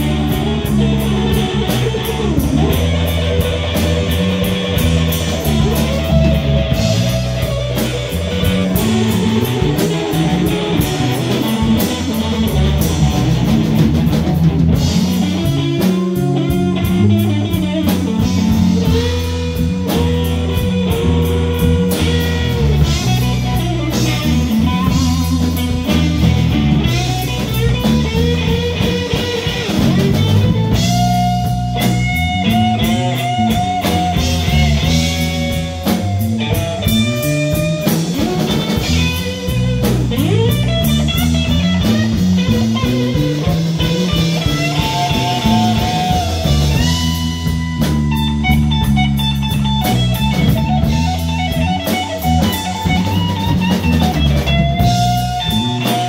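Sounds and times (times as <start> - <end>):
bass guitar: 0.0 - 56.0
drum kit: 0.0 - 56.0
electric guitar lead lines: 0.0 - 56.0.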